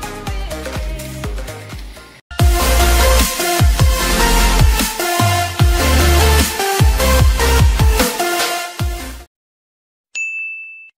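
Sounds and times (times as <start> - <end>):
electronic dance music: 0.0 - 9.3
bright bell-like ding: 10.2 - 11.0.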